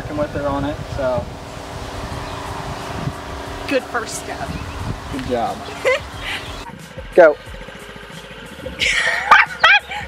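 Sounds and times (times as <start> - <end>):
small scooter engine running: 0.0 - 10.0
woman squealing and laughing: 8.8 - 10.0.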